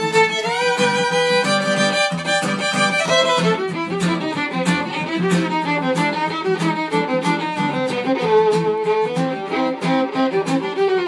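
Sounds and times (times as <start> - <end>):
fiddle bowed in fast runs: 0.0 - 11.0.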